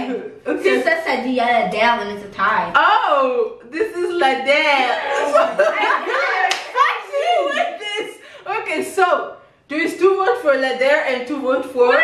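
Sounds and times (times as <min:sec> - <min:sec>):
girls laughing and exclaiming: 0:04.2 - 0:09.1
sharp hand clap: 0:06.4 - 0:06.9.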